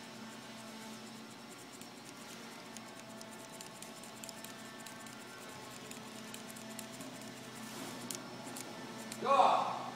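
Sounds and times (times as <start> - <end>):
metal toy clicking and rattling: 0.6 - 9.2.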